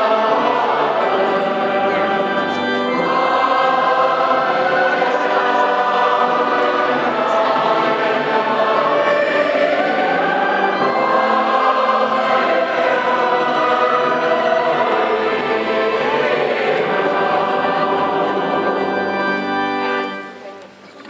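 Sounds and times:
choir singing a hymn: 0:00.0 - 0:20.4.

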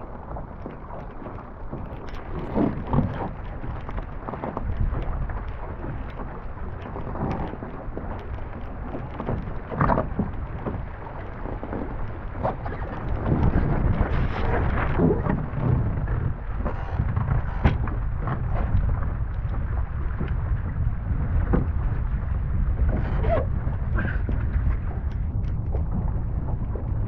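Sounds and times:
water splashing against hull: 0:00.0 - 0:27.0
wind buffeting microphone: 0:00.0 - 0:27.0.

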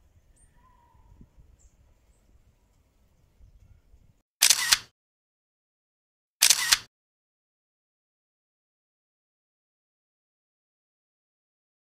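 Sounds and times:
camera shutter clicks: 0:04.4 - 0:04.9, 0:06.4 - 0:06.9.

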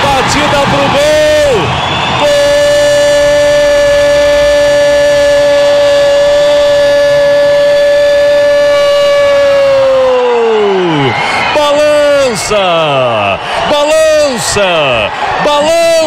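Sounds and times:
commentator's long goal shout: 0:00.0 - 0:16.0.

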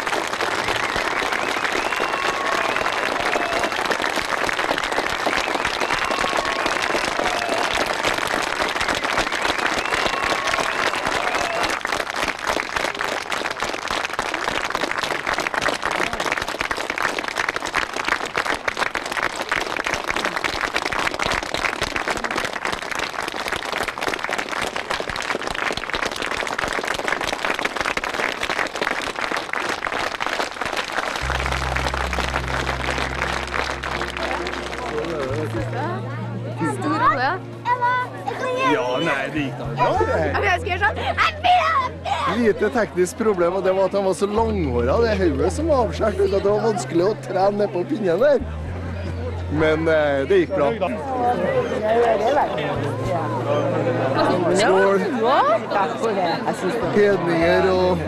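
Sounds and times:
audience applauding: 0:00.0 - 0:36.0
short pitched sounds: 0:31.2 - 0:35.6.

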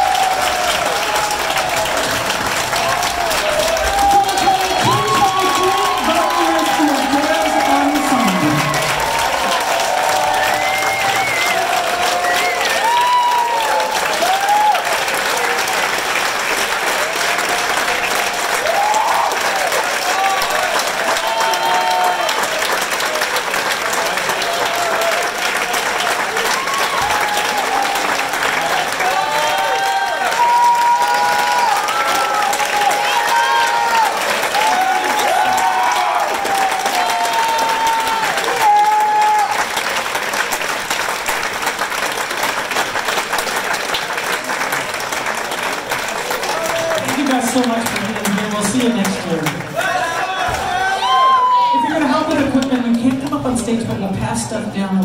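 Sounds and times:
audience applauding: 0:00.0 - 0:53.7
voices whooping and calling out: 0:02.8 - 0:14.9, 0:49.8 - 0:52.0.

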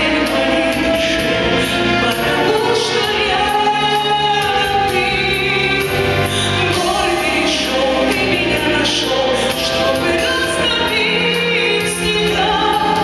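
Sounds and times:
woman singing into microphone: 0:00.0 - 0:13.0.

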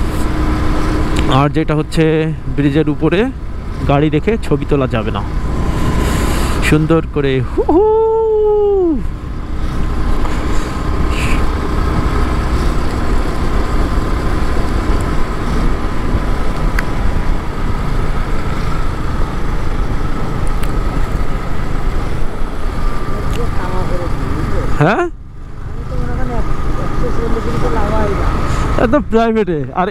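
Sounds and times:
wind and motorcycle road noise: 0:00.0 - 0:29.9
drawn-out human voice: 0:07.5 - 0:09.1.

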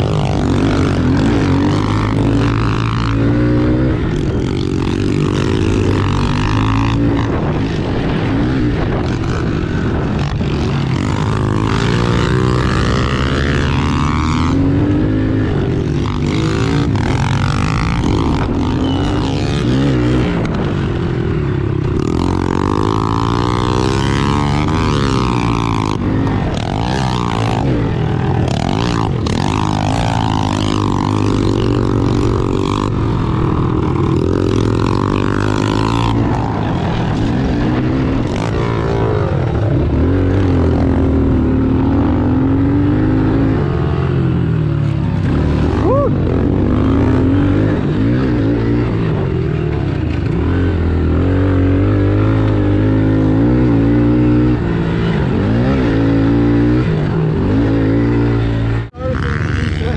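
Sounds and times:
wind on microphone: 0:00.0 - 0:45.3
motorbike engine revving: 0:00.0 - 0:59.9.

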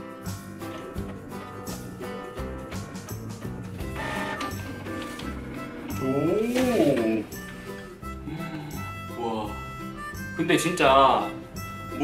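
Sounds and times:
background music: 0:00.0 - 0:12.0
inkjet printer feeding page: 0:03.9 - 0:07.2.

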